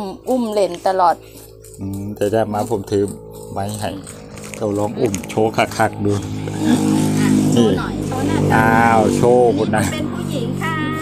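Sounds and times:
low engine hum: 0.0 - 11.0
person speaking: 0.0 - 11.0.

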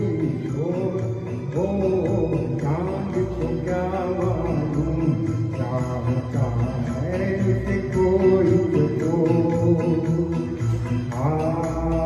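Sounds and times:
karaoke backing track: 0.0 - 12.0
man singing into a microphone: 0.0 - 12.0.

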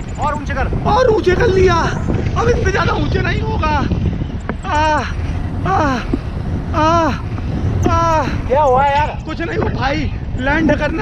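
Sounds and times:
wind rumble on microphone: 0.0 - 11.0
man wailing: 4.7 - 8.5.

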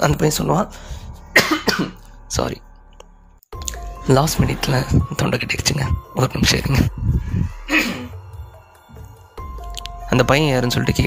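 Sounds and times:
person coughing: 1.3 - 2.1, 7.7 - 8.2.

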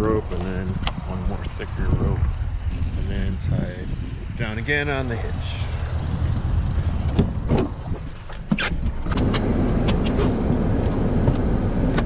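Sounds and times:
steady low rumble: 0.0 - 12.0
car door shutting: 7.0 - 7.8, 8.4 - 12.0
clicks and rustling in car: 7.0 - 12.0.

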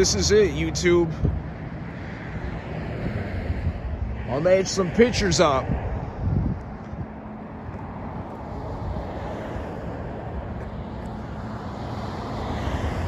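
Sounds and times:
distant traffic rumble: 0.0 - 13.0
wind on microphone: 1.1 - 13.0.

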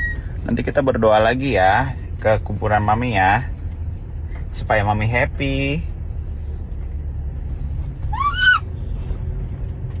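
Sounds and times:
low rumble of van cabin: 0.0 - 10.0.

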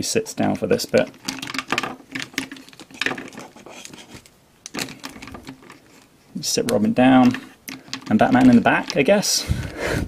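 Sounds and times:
plastic toys clicking and knocking: 0.7 - 9.4.

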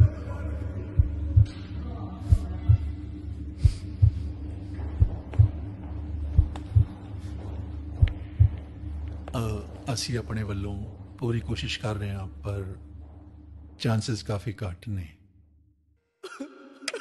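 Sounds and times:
steady low hum: 0.0 - 16.5
heartbeat-like double thumps: 1.0 - 1.6, 2.3 - 3.0, 3.6 - 8.8.

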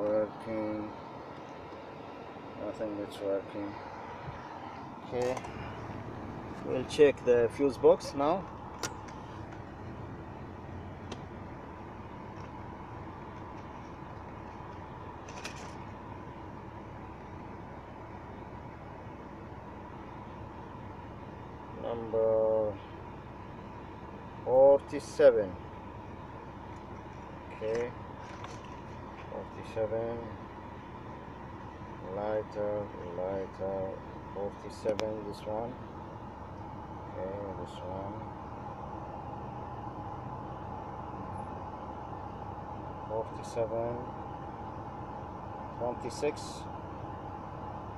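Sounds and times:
faint steady whine: 0.0 - 47.9
low hum inside car: 0.0 - 47.9.

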